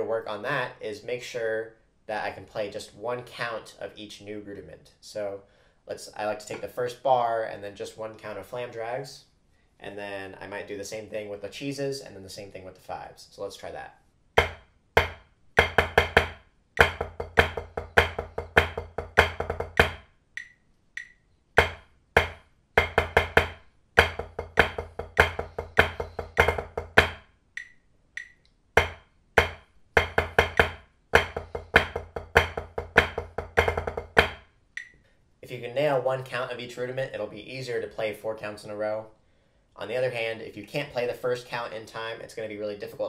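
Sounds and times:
drumsticks on a practice pad: 0:14.4 - 0:35.0.

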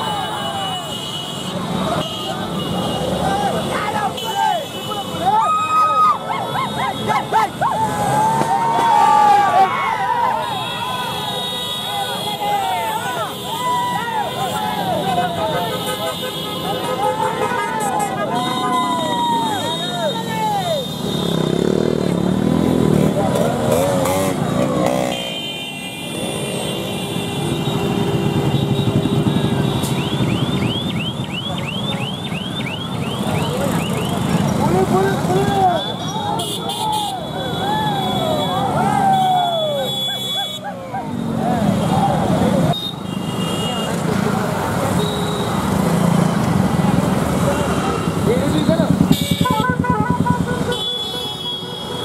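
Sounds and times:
vehicle horns: 0:00.0 - 0:05.4, 0:10.3 - 0:46.3, 0:47.4 - 0:52.0
crowd shouting: 0:00.0 - 0:21.7, 0:33.5 - 0:42.9
motorcycles riding past: 0:05.2 - 0:11.2, 0:16.6 - 0:42.8, 0:43.7 - 0:51.9.

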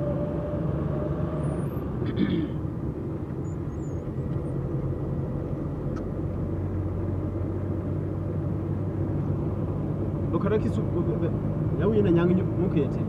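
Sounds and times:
car engine drone: 0:00.0 - 0:13.0
road noise: 0:00.0 - 0:13.0.

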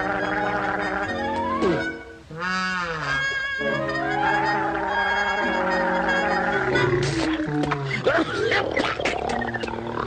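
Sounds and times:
orchestral music: 0:00.0 - 0:02.3, 0:03.1 - 0:07.2.

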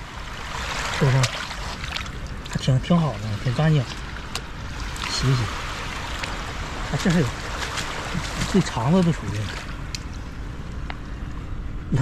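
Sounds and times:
small waves on sandy shore: 0:00.0 - 0:10.1.

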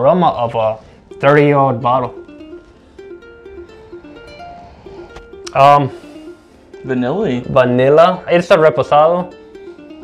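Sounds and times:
plucked-string melody: 0:00.0 - 0:10.0.

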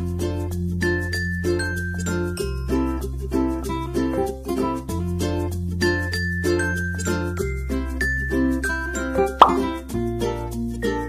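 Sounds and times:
light plucked background music: 0:01.4 - 0:11.0
rising plop sound effect: 0:09.4 - 0:09.7.

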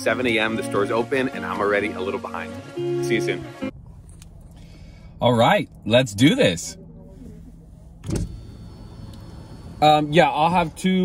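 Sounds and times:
car cabin low hum: 0:05.6 - 0:11.0.

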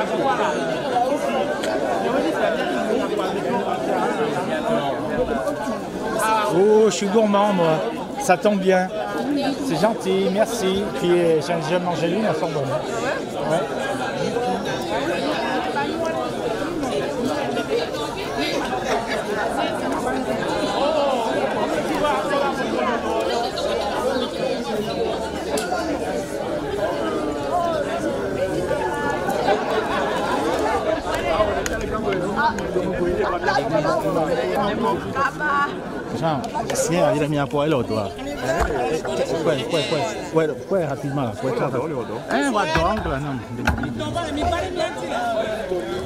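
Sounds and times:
crowd chatter: 0:00.0 - 0:46.0.

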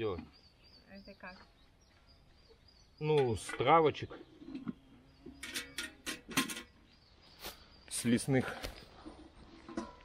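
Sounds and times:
metal pot clinking: 0:05.3 - 0:06.8.

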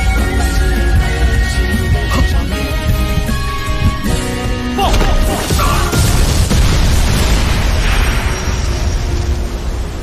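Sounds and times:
deep rumbling explosion: 0:05.9 - 0:10.0.

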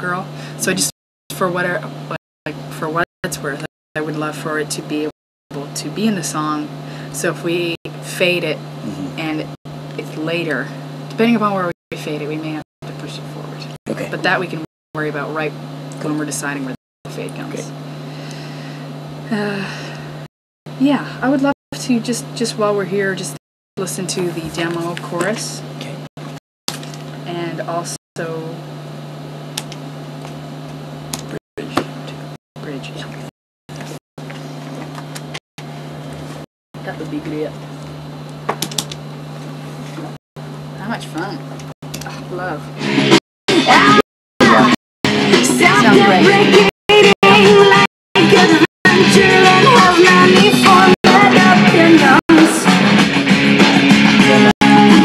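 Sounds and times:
rock song with sung vocal: 0:42.8 - 0:55.0.

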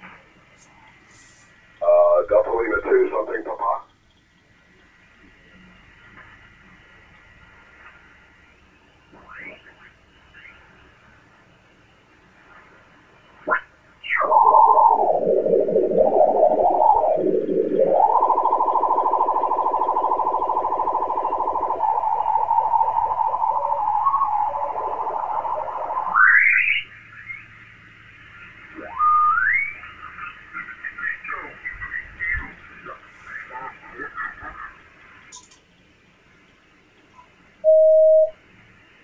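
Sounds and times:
radio signals whistling and warbling: 0:00.6 - 0:03.9, 0:09.1 - 0:10.7, 0:13.2 - 0:35.1, 0:37.6 - 0:38.4
buzzy radio tone: 0:00.7 - 0:03.9, 0:13.4 - 0:35.0, 0:37.7 - 0:38.4.

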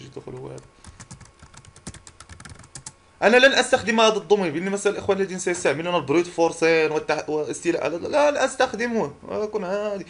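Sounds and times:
computer keyboard typing: 0:00.3 - 0:03.0.

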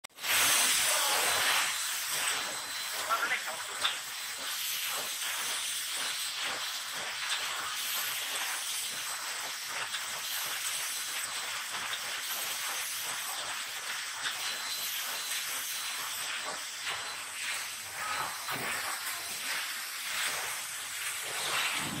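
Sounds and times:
factory machinery hiss: 0:00.1 - 0:22.0.

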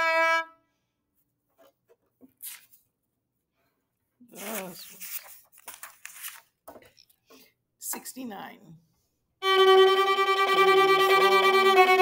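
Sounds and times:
bowed viola note: 0:09.4 - 0:12.0.

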